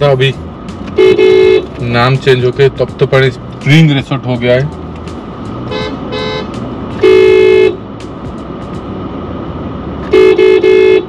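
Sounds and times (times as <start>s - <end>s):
car horn beeping: 0.9s - 1.8s, 5.6s - 7.8s, 10.0s - 11.0s.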